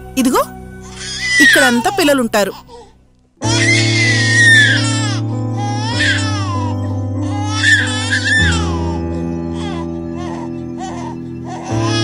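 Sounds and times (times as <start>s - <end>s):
baby crying: 0.8s - 12.0s
low music drone: 3.1s - 12.0s.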